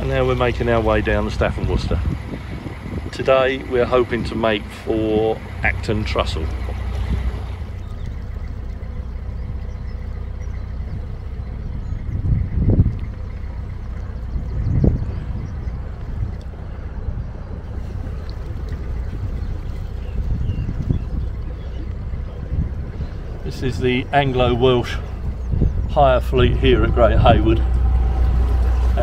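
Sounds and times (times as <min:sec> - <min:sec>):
boat diesel engine humming: 0:00.0 - 0:29.0
wind buffeting microphone: 0:00.0 - 0:29.0.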